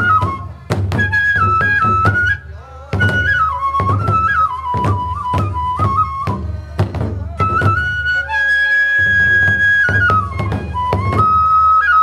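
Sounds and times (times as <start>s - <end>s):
taiko drum strokes: 0.0s - 11.6s
bamboo flute melody: 0.0s - 12.0s.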